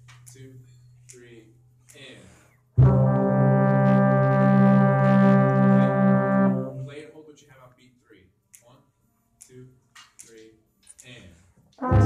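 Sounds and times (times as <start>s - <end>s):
trombone long low note: 2.8s - 7.0s, 11.8s - 12.0s.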